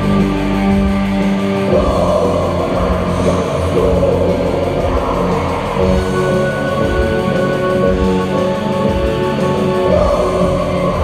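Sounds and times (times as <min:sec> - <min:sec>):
black metal band playing live: 0:00.0 - 0:11.0.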